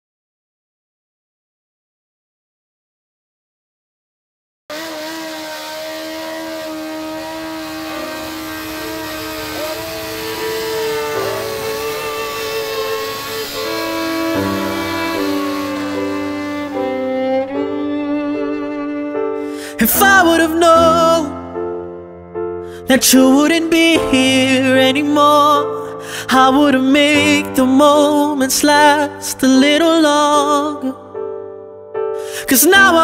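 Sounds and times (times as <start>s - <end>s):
violin: 4.7s - 21.3s
cello: 4.8s - 21.2s.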